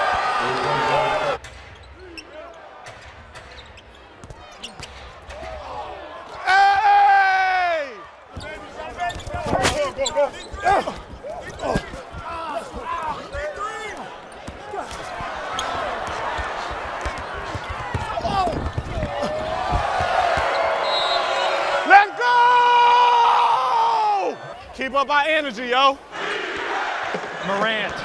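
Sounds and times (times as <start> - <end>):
sneakers squeaking: 1.4 - 5.6, 8.3 - 21.7
long drawn-out shout: 6.4 - 8.0, 21.7 - 24.5
basketball dribbling: 14.4 - 20.6.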